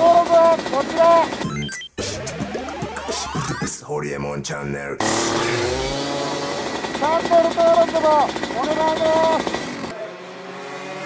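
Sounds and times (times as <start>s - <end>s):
go-kart engine running: 0.0s - 1.5s, 5.0s - 11.0s
quieter kart engine from trackside: 5.0s - 11.0s.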